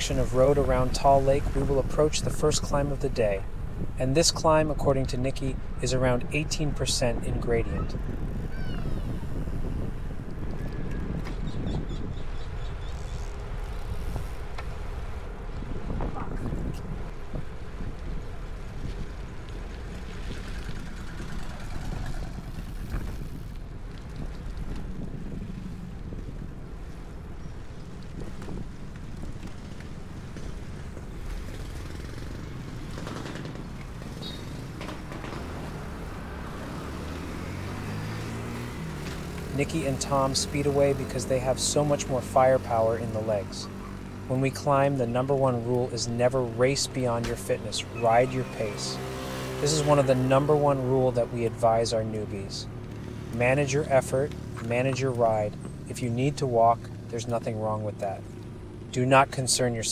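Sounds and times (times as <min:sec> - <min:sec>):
wind over microphone: 0:00.0 - 0:35.3
tyre and road rumble: 0:00.0 - 0:59.9.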